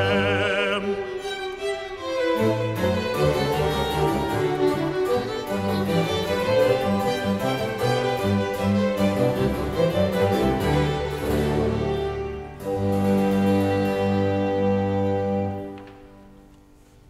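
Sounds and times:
baroque orchestra playing: 0.0 - 16.8.

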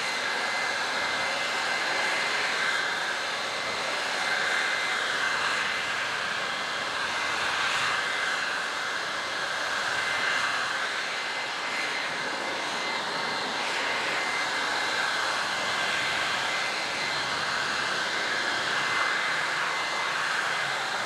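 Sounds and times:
electric leaf blower running: 0.0 - 21.0.

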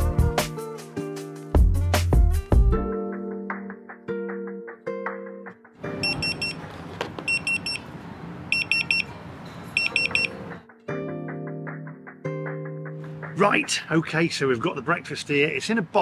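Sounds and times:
pager triple beeps: 6.0 - 6.6, 7.3 - 7.8, 8.5 - 9.1, 9.8 - 10.4.

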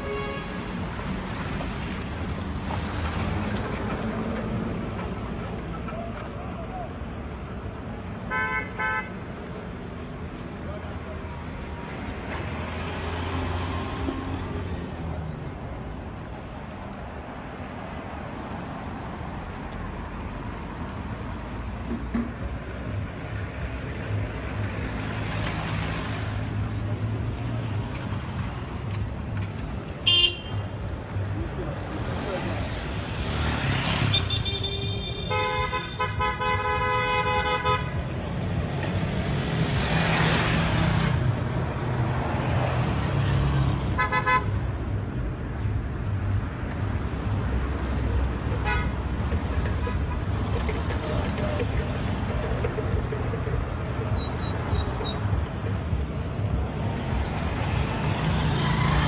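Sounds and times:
vehicles passing close by: 0.0 - 59.0.

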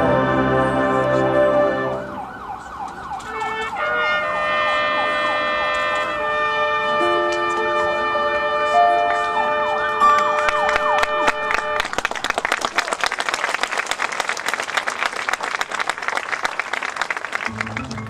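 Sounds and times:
gliding siren-like tones: 0.4 - 6.0, 8.8 - 11.5.

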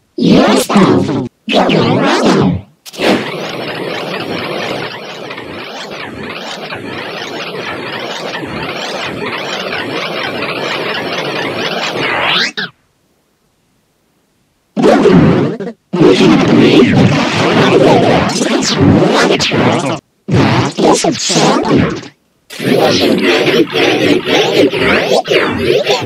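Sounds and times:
harsh distorted noise: 0.0 - 12.8, 14.8 - 26.0.

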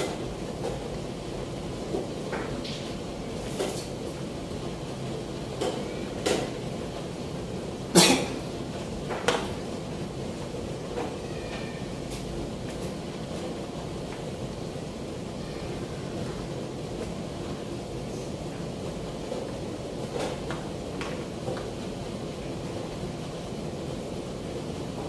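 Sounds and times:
steady background hum: 0.0 - 25.0.

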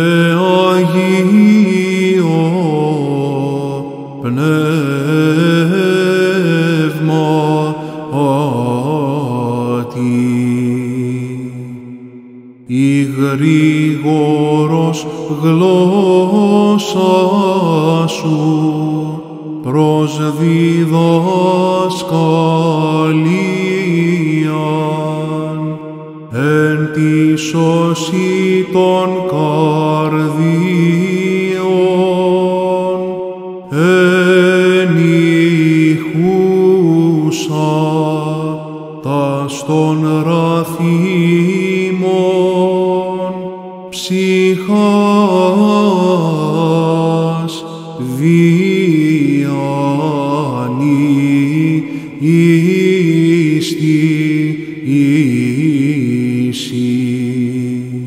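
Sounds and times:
low held vocal drone: 0.0 - 58.0
man chanting: 0.0 - 58.0.

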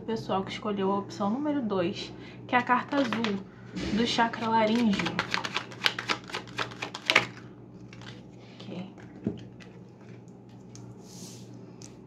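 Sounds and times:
cards being shuffled: 4.4 - 8.2.

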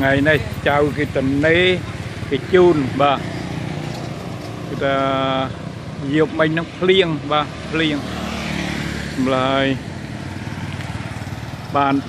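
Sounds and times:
motorbikes passing: 0.0 - 12.0.

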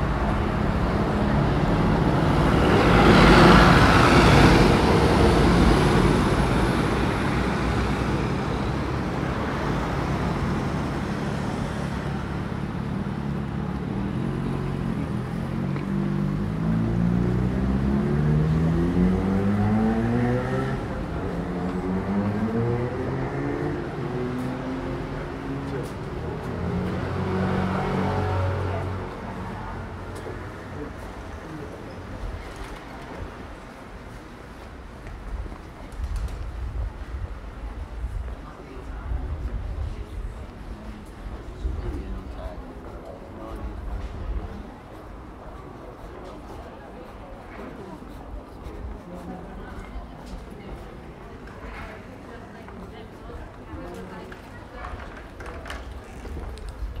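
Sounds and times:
steady traffic noise: 0.0 - 57.0.

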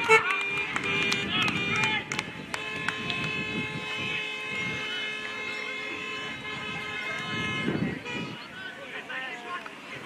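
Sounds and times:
car horns honking: 0.0 - 9.2.

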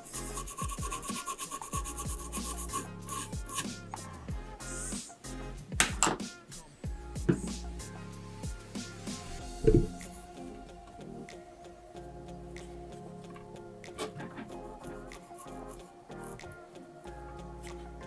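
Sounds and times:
small brush scrubbing: 0.0 - 3.8
background music: 0.0 - 18.0.

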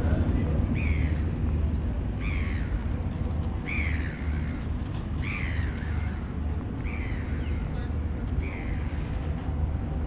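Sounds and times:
steady low rumble: 0.0 - 10.0.

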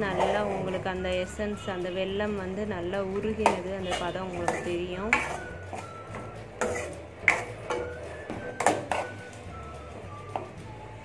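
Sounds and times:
metal ladle scraping pan: 0.0 - 0.9, 3.1 - 9.4.

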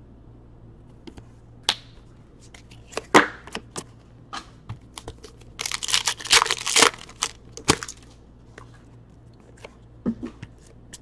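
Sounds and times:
wrapper tearing and crinkling: 5.3 - 8.1.

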